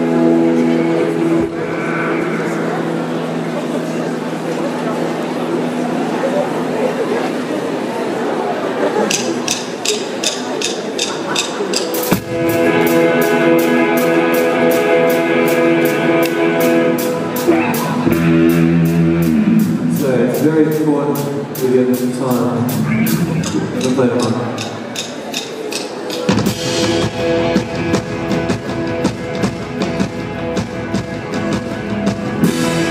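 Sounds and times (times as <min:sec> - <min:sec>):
rock band playing: 0:00.0 - 0:05.9, 0:09.1 - 0:32.9
electric guitar chords: 0:00.0 - 0:07.0, 0:12.0 - 0:24.6, 0:26.3 - 0:32.9
ticking beat: 0:09.1 - 0:19.6, 0:22.8 - 0:32.8.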